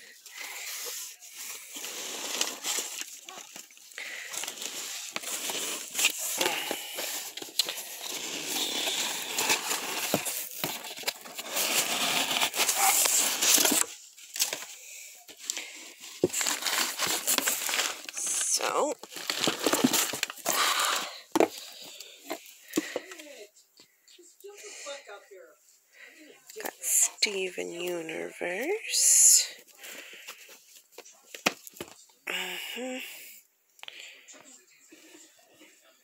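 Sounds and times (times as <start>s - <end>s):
plastic wrap crinkling: 0.0s - 23.4s.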